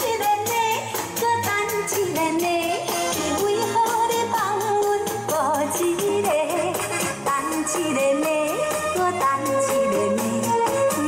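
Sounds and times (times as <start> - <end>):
drum kit playing a steady beat: 0.0 - 11.0
pop backing track melody: 0.0 - 11.0.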